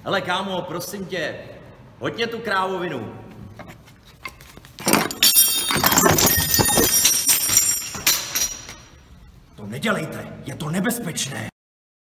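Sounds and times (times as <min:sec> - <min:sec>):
hard objects crashing and clattering: 0:04.8 - 0:08.9
high ringing: 0:05.0 - 0:09.4.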